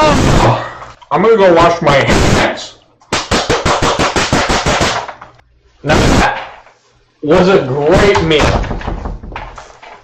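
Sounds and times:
person clapping hands quickly: 3.1s - 5.1s.

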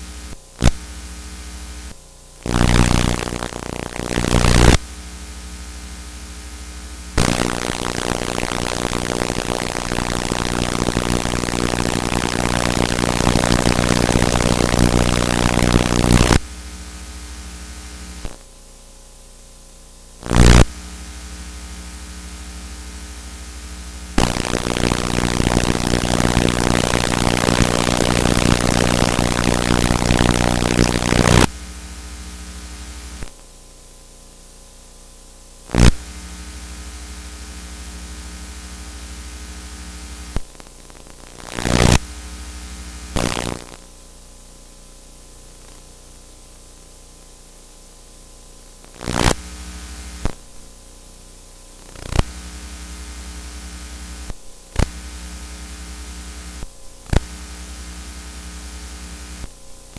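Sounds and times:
burst of static: 0.0s - 18.5s, 20.2s - 33.4s, 35.6s - 43.9s, 48.8s - 50.5s, 51.8s - 59.9s
tape hiss: 0.0s - 18.6s, 20.1s - 33.6s, 35.6s - 44.0s, 48.5s - 50.8s, 51.4s - 59.9s
mains hum: 0.0s - 59.9s.

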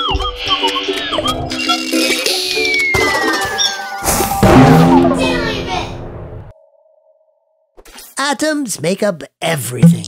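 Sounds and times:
cartoon intro jingle: 4.0s - 6.3s
person speaking: 8.2s - 10.0s.

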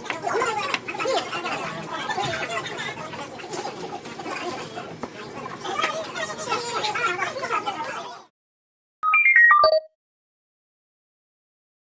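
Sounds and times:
short electronic jingle: 9.0s - 9.9s.

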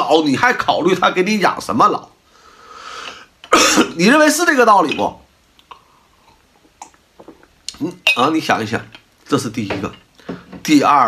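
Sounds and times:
man speaking: 0.0s - 2.2s, 3.6s - 5.3s, 7.7s - 11.0s
man breathing in: 2.3s - 3.4s
man coughing: 3.5s - 4.0s.

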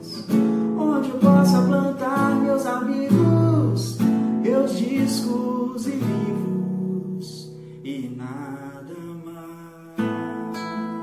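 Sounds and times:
nylon-string classical guitar: 0.0s - 11.0s.

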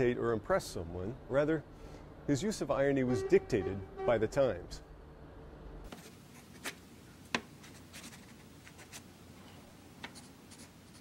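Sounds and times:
pen scratching on paper: 10.1s - 11.0s.

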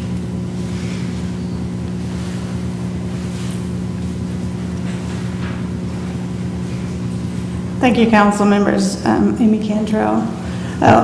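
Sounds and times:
low hum of microphone system: 0.0s - 11.0s.

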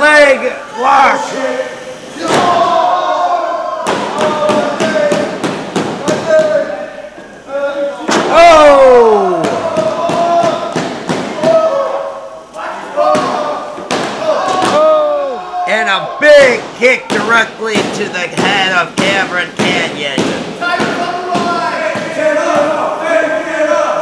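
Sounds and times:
voices shouting: 0.0s - 5.4s, 6.0s - 24.0s
long falling yell: 8.2s - 10.7s, 14.2s - 15.8s.

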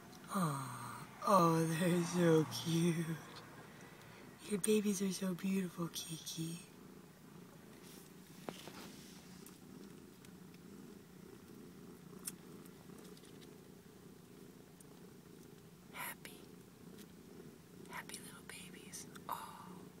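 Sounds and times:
cat purring: 0.0s - 20.0s.

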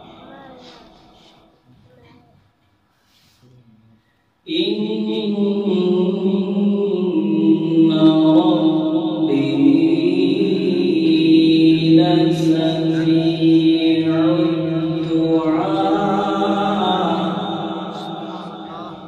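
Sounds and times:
man chanting melodically: 4.4s - 19.0s.

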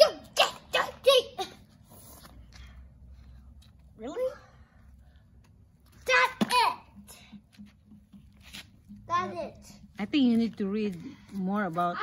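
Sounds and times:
child speaking: 0.0s - 1.6s, 4.0s - 4.6s, 6.0s - 7.0s, 9.1s - 9.9s.

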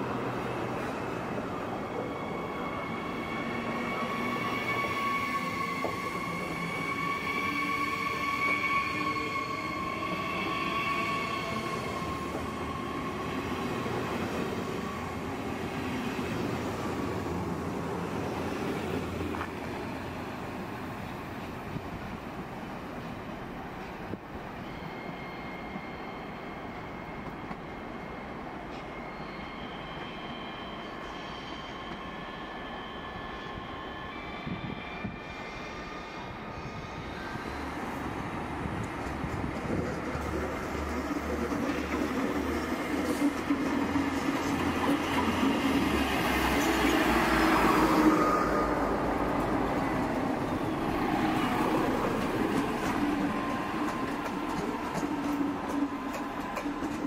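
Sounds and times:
electric train whine: 0.0s - 57.0s
train rolling rumble: 36.7s - 57.0s.

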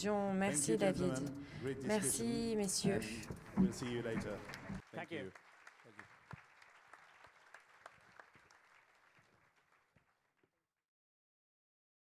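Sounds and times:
audience applauding: 2.9s - 10.3s.

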